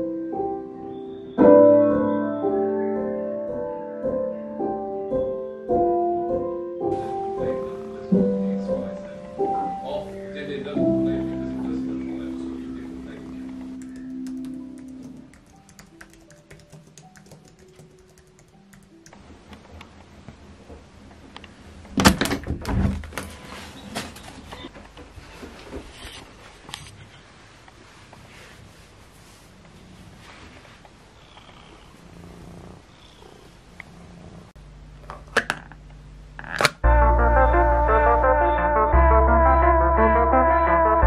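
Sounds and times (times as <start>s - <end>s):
soft background music: 0.0s - 19.8s, 36.8s - 41.0s
fingers typing on keyboard: 13.8s - 19.2s
cat purring: 29.2s - 34.6s.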